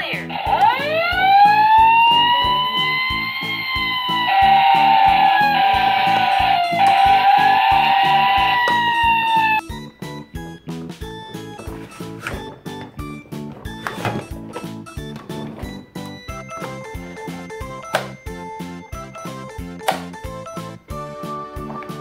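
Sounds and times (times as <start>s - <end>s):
background music with steady beat: 0.0s - 22.0s
electronic siren wail: 0.4s - 9.6s.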